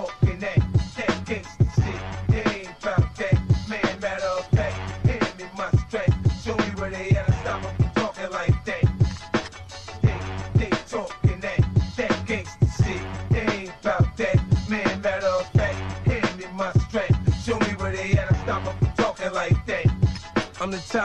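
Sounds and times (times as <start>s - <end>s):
drum beat with deep bass: 0.0s - 21.0s
hip hop vocals: 0.0s - 21.0s.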